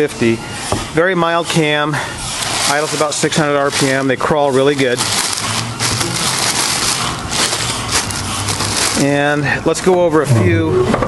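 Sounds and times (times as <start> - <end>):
plastic sheeting crinkling: 1.6 - 9.4.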